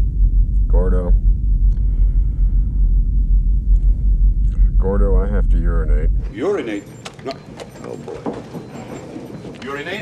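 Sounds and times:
low cabin rumble: 0:00.0 - 0:10.0.

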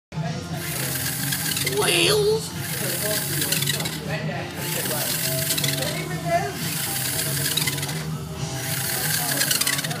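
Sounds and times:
electric motor hum: 0:00.5 - 0:10.0
rapid gear clicking: 0:00.6 - 0:02.0, 0:02.6 - 0:10.0.

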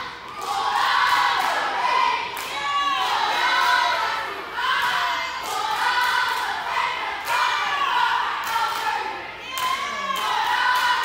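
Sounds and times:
girls chanting a cheer in unison: 0:00.0 - 0:11.0.

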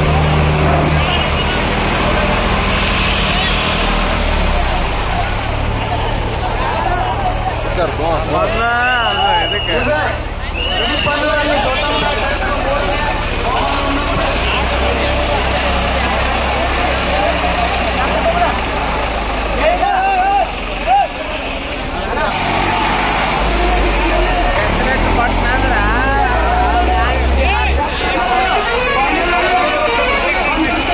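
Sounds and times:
crowd shouting: 0:00.0 - 0:30.9
tractor diesel engine running: 0:00.0 - 0:30.9.

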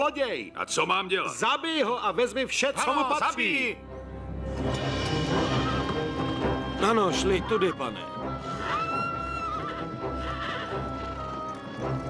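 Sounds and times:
horses whinnying: 0:08.4 - 0:11.6.

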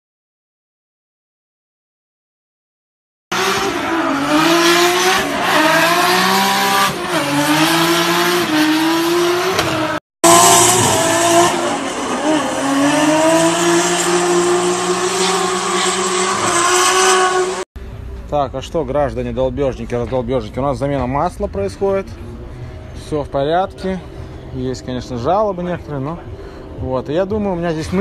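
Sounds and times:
car engine revving hard: 0:03.3 - 0:17.7.

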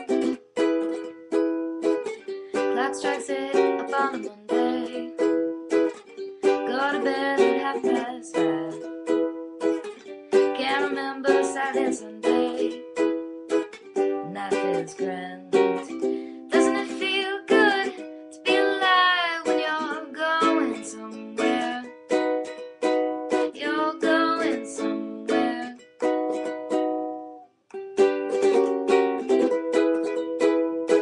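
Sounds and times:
ukulele strumming chords: 0:00.0 - 0:31.0
person singing: 0:01.8 - 0:22.2, 0:23.3 - 0:26.5.

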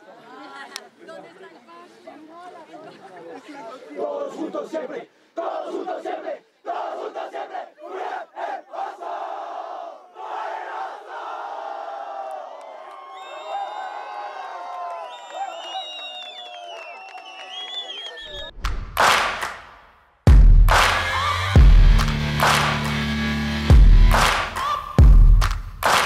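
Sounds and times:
team shouting a chant: 0:03.9 - 0:12.5
team cheering: 0:05.4 - 0:18.5, 0:20.7 - 0:26.0.

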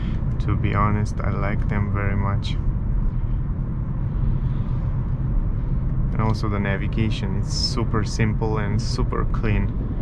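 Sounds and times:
road and tyre noise in car: 0:00.0 - 0:10.0.

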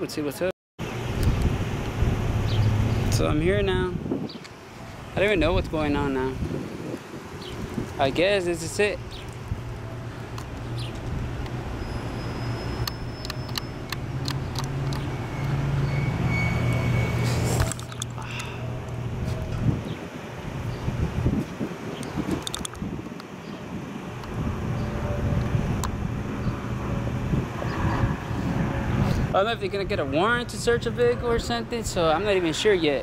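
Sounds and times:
street traffic: 0:00.0 - 0:33.0.

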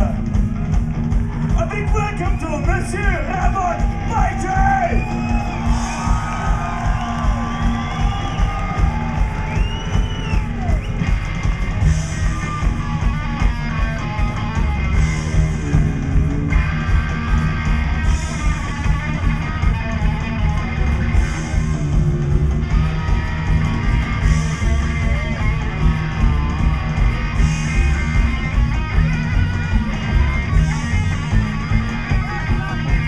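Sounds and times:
drums: 0:00.0 - 0:33.0
upright bass: 0:00.0 - 0:33.0
electric guitar lead: 0:04.9 - 0:33.0.

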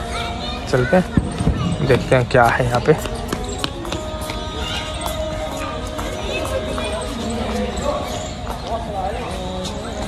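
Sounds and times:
footsteps on stone paving: 0:01.0 - 0:10.0.

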